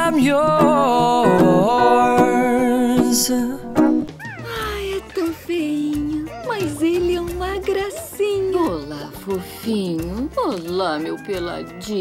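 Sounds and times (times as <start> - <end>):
cartoon baby crying out: 4.2 - 5.1.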